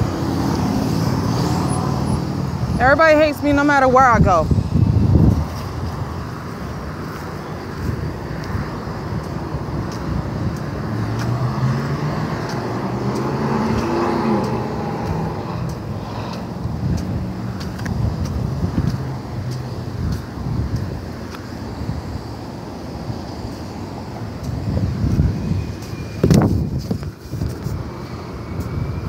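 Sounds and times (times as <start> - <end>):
road traffic passing: 0.0 - 29.0
vehicle engine: 0.0 - 29.0.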